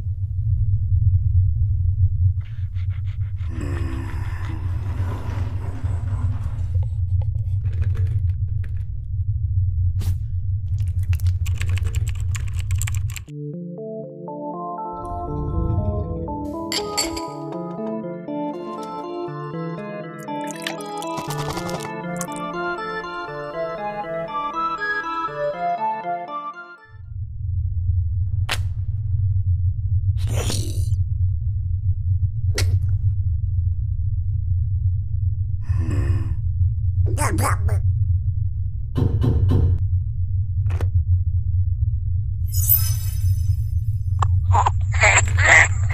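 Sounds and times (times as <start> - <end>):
steady low hum: 0.0 - 13.2, 27.0 - 45.9
steady low rumble: 0.0 - 13.3, 14.9 - 16.8, 27.0 - 45.9
rapid sharp clicks: 10.9 - 13.3
rising synth notes: 13.3 - 20.9, 21.6 - 26.8.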